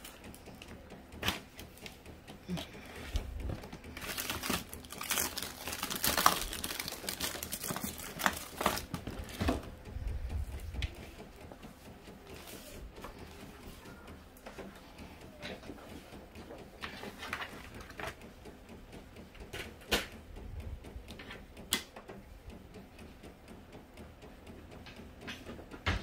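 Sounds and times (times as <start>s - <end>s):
inkjet printer clicks and rattles: 0.0s - 26.0s
low printer rumbles: 0.0s - 26.0s.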